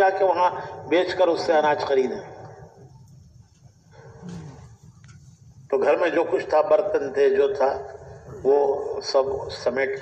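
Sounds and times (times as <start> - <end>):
faint low vocal sound: 3.9 - 5.0.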